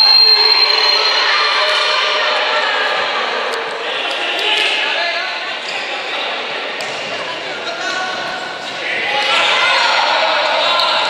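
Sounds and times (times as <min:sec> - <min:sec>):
long whistle blast: 0:00.0 - 0:01.3
spectators shouting and cheering: 0:00.0 - 0:11.0.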